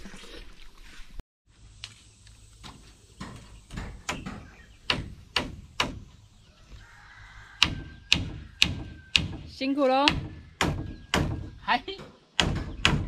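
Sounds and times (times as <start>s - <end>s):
hammer blows on wood: 7.6s - 13.0s.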